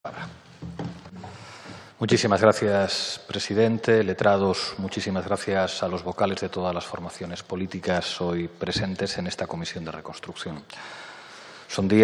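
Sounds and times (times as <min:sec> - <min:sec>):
soft knocks and rustles: 0:00.2 - 0:01.9.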